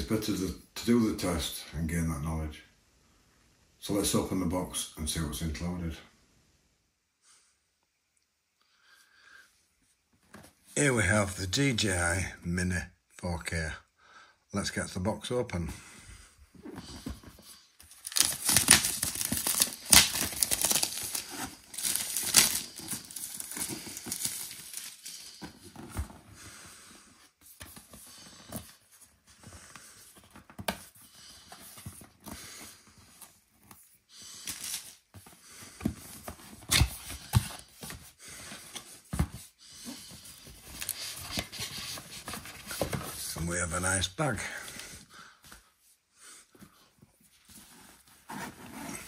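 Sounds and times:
cardboard box being opened: 0:16.6 - 0:26.4
plastic wrap tearing and crinkling: 0:18.0 - 0:25.0.

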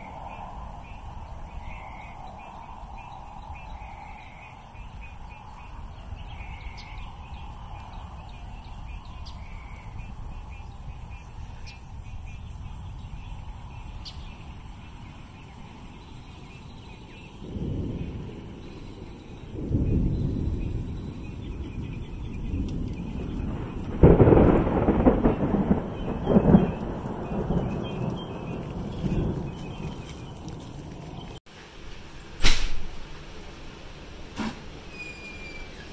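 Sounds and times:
thunder rumbling: 0:00.0 - 0:31.4
loud thunder peal: 0:17.3 - 0:31.4.

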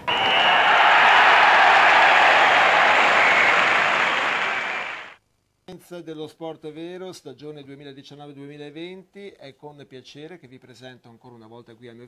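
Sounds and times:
crowd applause: 0:00.0 - 0:05.2.

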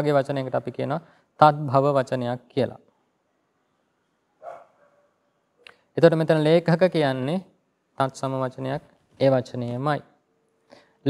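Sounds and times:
dog bark: 0:04.4 - 0:05.2.

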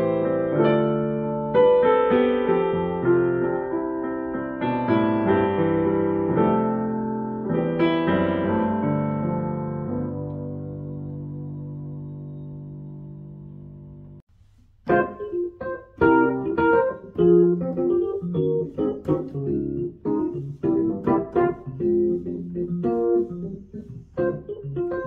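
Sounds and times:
piano chord: 0:00.0 - 0:14.2, 0:14.8 - 0:25.0
electric piano chords: 0:00.0 - 0:25.0.

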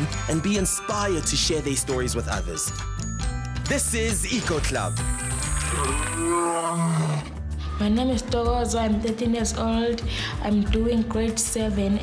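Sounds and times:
theme music: 0:00.0 - 0:09.5
big cat roar: 0:05.6 - 0:07.4.

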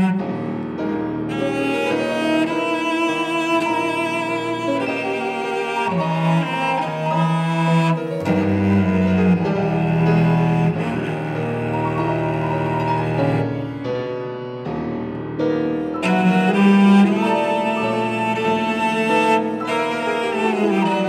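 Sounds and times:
chamber music for bowed strings: 0:00.0 - 0:21.0
sustained low string notes: 0:08.2 - 0:13.7.

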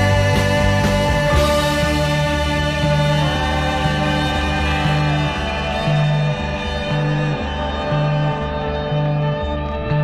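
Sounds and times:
bass line: 0:00.0 - 0:10.0
rock guitar: 0:00.0 - 0:10.0
sustained organ: 0:00.0 - 0:10.0.

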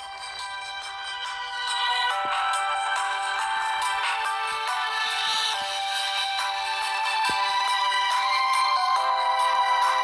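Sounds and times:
instrumental music with long held notes: 0:00.0 - 0:10.0.

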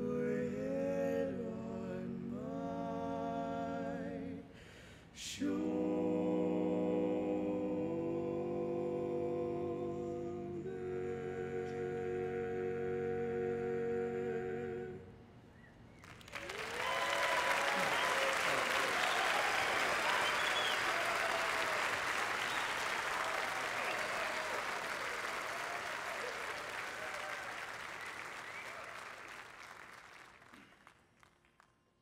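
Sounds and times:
audience applauding: 0:16.0 - 0:31.7
whoops from audience: 0:16.4 - 0:29.1.

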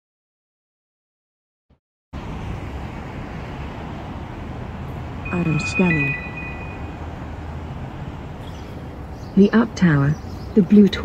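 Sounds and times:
street traffic rumble: 0:02.1 - 0:11.0
thin high steady tones: 0:05.2 - 0:07.2.

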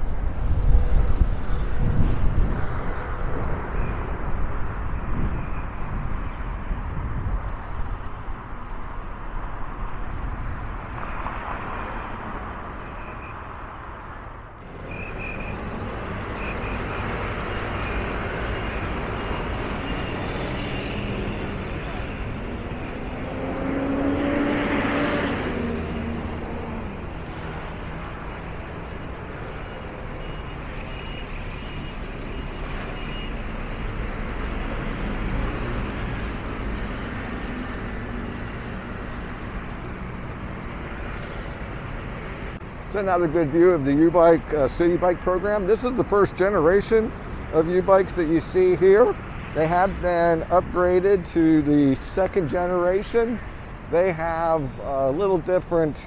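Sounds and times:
cars passing: 0:00.0 - 0:56.0
motor vehicle passing by: 0:15.4 - 0:28.6.

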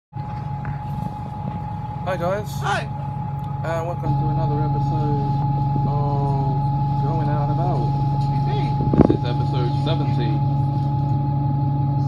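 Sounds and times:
vehicle engine hum: 0:00.1 - 0:12.0
high-pitched whine: 0:00.2 - 0:12.0.

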